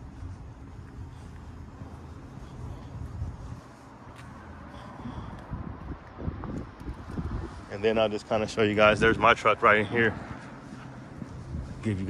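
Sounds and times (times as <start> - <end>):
wind on microphone: 4.8 - 9.6, 10.8 - 12.0.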